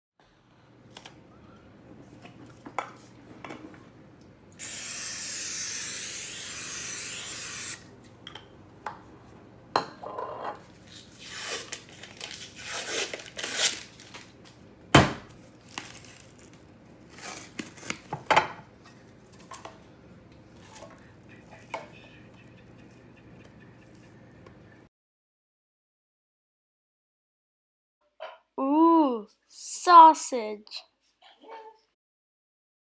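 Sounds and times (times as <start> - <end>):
cooking spray hissing: 4.6 - 7.8
paper wrapper tearing: 10.9 - 14.4, 15.6 - 18.1.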